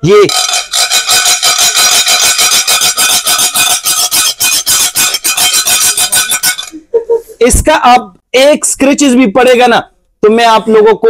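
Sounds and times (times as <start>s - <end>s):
ceramic dish ringing: 0.3s - 6.8s
spoon scraping ceramic platter: 0.3s - 6.8s.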